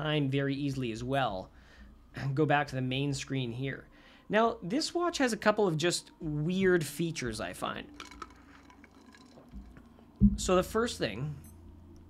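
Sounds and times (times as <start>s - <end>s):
soft low thump: 10.2s - 10.7s.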